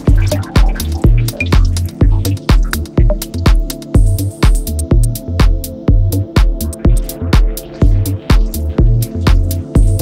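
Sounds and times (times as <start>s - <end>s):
deep bass line: 0.0s - 10.0s
house music: 0.0s - 10.0s
kick drum: 0.0s - 10.0s.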